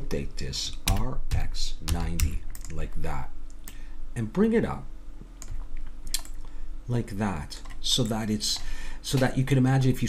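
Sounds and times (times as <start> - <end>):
keyboard keys tapping: 0.9 - 2.8
sharp keyboard clicks: 0.9 - 2.8.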